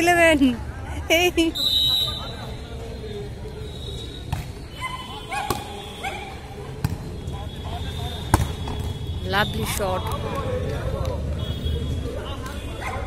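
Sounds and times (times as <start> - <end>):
voices calling out: 1.0 - 13.0.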